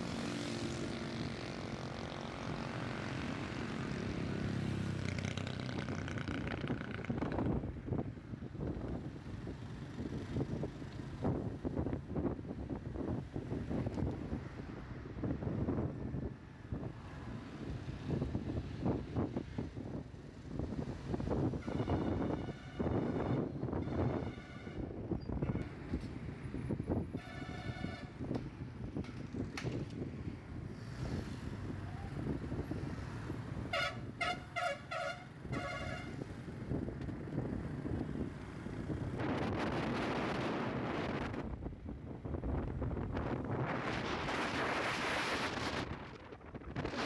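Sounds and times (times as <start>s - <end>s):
road traffic and engine noise: 0.0s - 47.0s
wind buffeting microphone: 5.3s - 34.6s, 35.3s - 47.0s
vehicle horn: 21.5s - 24.9s, 27.1s - 28.2s, 33.7s - 36.2s.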